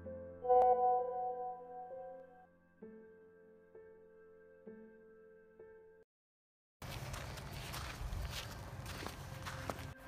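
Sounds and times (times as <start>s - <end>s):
footsteps on gravel: 6.8s - 10.0s
outdoor background noise: 6.8s - 10.0s.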